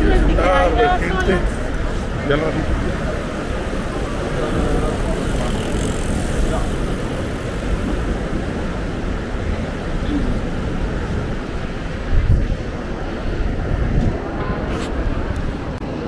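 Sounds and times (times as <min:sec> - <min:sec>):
voices: 0:00.0 - 0:16.0.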